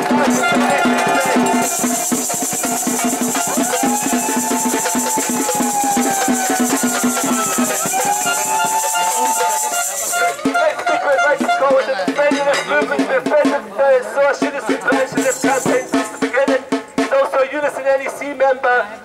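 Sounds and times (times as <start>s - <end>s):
drums in fast rhythm: 0.0s - 18.4s
shakers: 0.1s - 10.4s, 14.8s - 16.6s.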